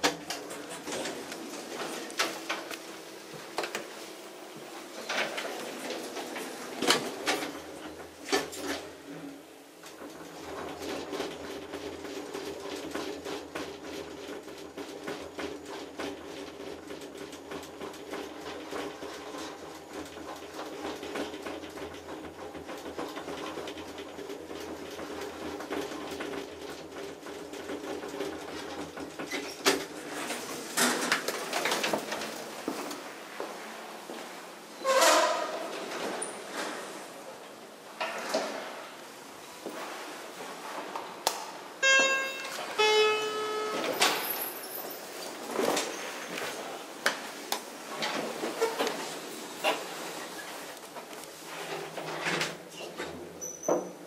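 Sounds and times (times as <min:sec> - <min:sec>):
elevator machinery humming: 0:41.8 - 0:45.2
elevator doors clattering: 0:41.8 - 0:46.5.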